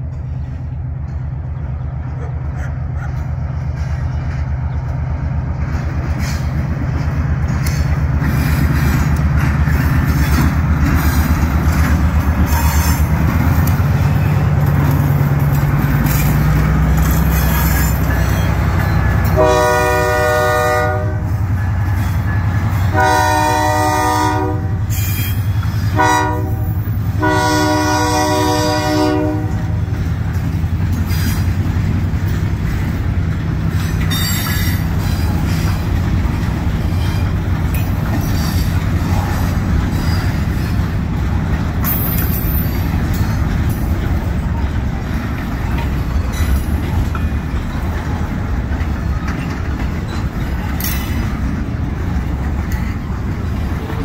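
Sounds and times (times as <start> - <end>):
diesel locomotive running: 0.0 - 54.0
train wheels clattering on rails: 0.0 - 54.0
locomotive horn: 12.4 - 14.6, 17.4 - 29.8.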